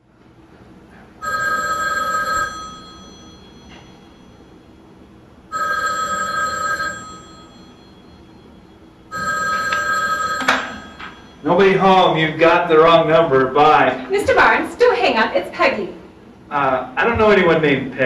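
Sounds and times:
telephone ringing: 1.2s - 12.0s.

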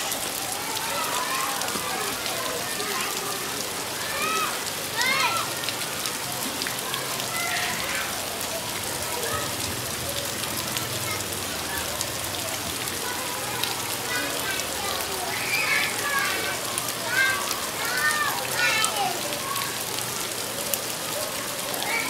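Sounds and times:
rain falling on ground: 0.0s - 22.0s.

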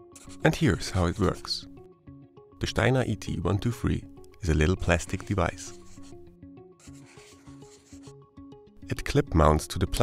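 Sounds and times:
soft plucked music: 0.0s - 10.0s
pencil sketching on paper: 0.1s - 1.5s, 4.8s - 8.2s.

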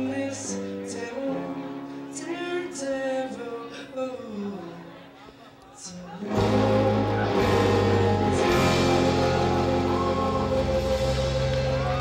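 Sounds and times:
rock band playing loudly: 6.2s - 12.0s.

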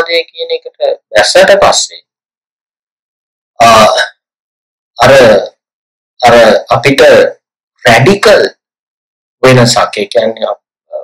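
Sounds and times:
man speaking: 0.0s - 2.0s, 3.6s - 4.1s, 5.0s - 5.5s, 6.2s - 7.3s, 7.9s - 8.5s, 9.4s - 11.0s.

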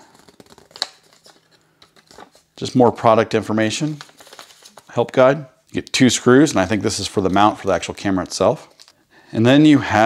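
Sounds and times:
paper leaflet rustling and crackling: 0.0s - 2.5s, 3.7s - 4.9s.

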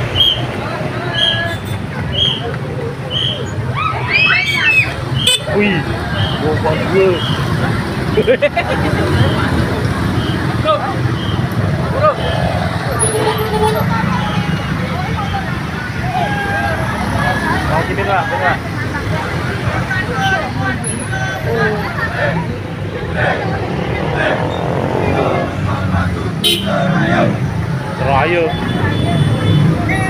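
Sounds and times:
crowd chatter and calls: 0.0s - 30.0s
motorbike engines passing: 0.0s - 30.0s.

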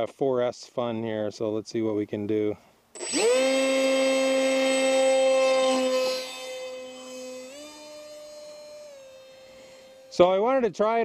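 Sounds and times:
electric motor high whine: 3.0s - 10.4s.

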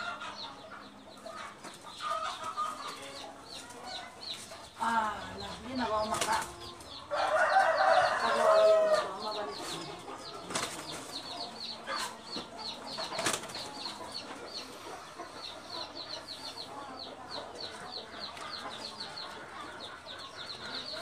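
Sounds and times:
chicken clucking: 0.0s - 21.0s.

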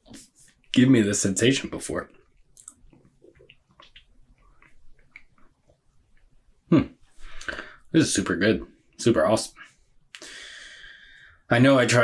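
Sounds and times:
man's lip smacks and tongue clicks: 2.2s - 6.3s.

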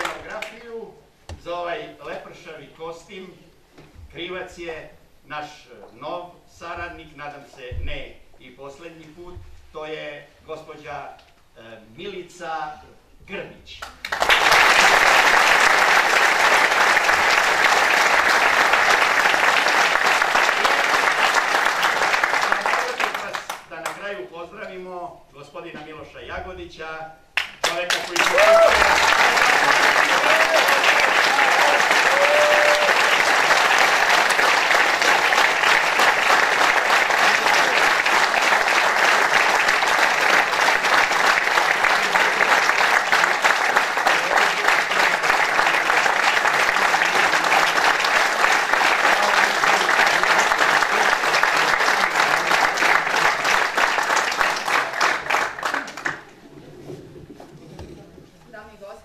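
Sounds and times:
crowd applauding: 0.0s - 0.6s, 13.9s - 24.0s, 27.4s - 56.6s.

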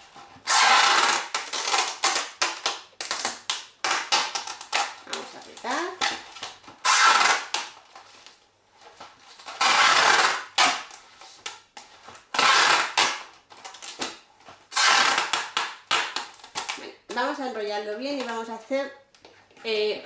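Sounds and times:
packing tape pulled off roll: 0.4s - 7.8s, 9.3s - 11.6s, 12.2s - 16.8s.

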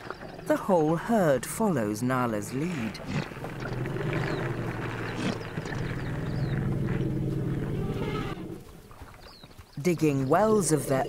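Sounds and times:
elephants rumbling: 0.0s - 11.0s.

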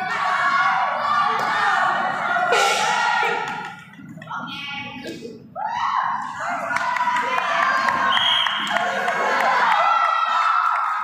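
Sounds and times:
crowd shouting and cheering: 0.0s - 4.1s, 5.6s - 11.0s.

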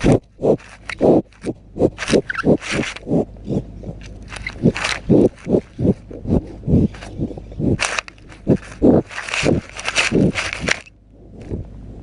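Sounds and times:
cattle breathy puffs: 0.0s - 10.6s
muzzles rubbing against camera: 0.0s - 11.6s.

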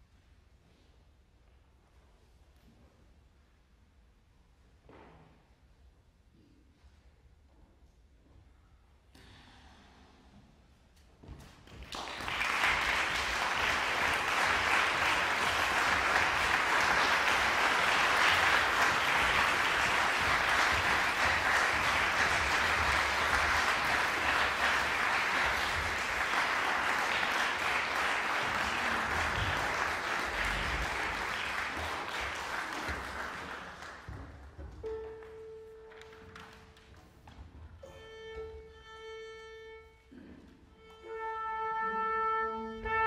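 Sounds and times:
audience applauding: 11.7s - 34.3s.

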